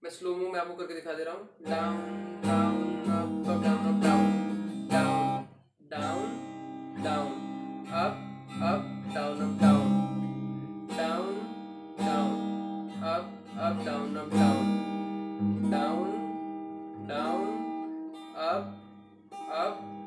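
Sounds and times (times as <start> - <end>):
acoustic guitar strumming: 1.6 - 20.0.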